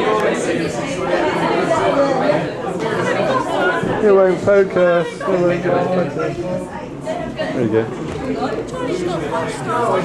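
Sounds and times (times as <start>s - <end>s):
indistinct chatter: 0.0s - 10.0s.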